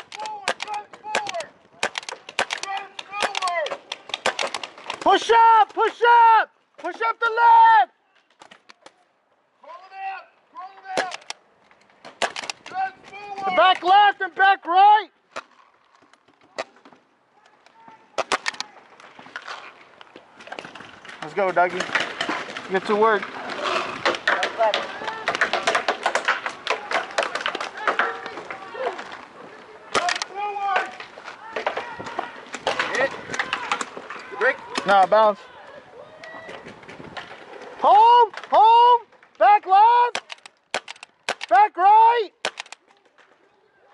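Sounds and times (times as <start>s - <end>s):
paintball markers firing: 0.0s - 5.1s, 10.9s - 11.4s, 12.1s - 12.8s, 18.2s - 18.7s, 29.9s - 30.4s, 40.1s - 41.6s, 42.4s - 42.8s
person shouting: 37.8s - 40.2s.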